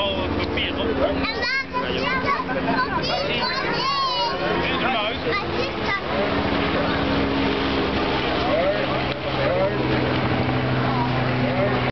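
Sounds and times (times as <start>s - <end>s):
low mechanical hum: 0.0s - 11.9s
voices: 0.0s - 11.9s.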